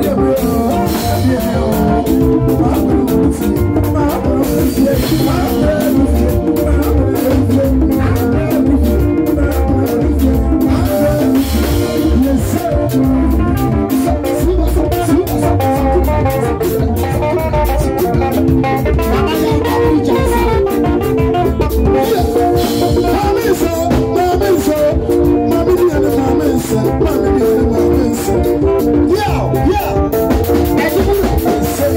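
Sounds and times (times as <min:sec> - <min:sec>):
amplified singing: 0:00.0 - 0:31.9
drum kit: 0:00.0 - 0:31.9
electric guitar: 0:00.0 - 0:31.9
hand drums: 0:00.0 - 0:31.9.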